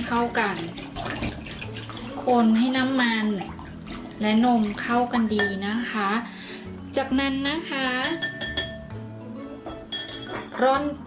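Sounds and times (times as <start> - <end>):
background music: 0.0 - 11.0
metal sieve clinking on glass bowl: 5.2 - 5.8, 8.0 - 8.9, 9.7 - 10.7.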